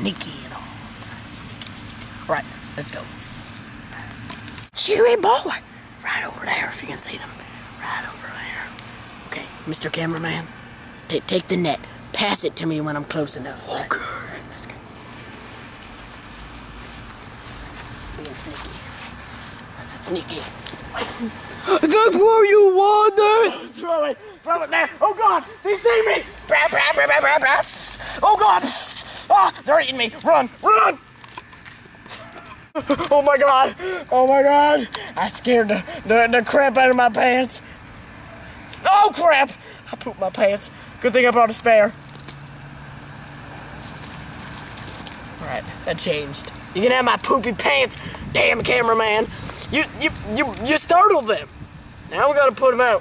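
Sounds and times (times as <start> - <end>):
outdoor background noise: 0.0 - 53.0.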